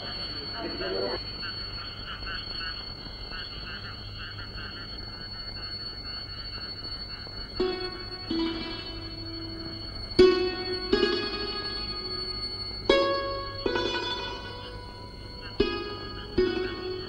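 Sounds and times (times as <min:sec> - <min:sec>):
frogs croaking: 0:00.0 - 0:17.0
plucked string notes: 0:07.6 - 0:17.0.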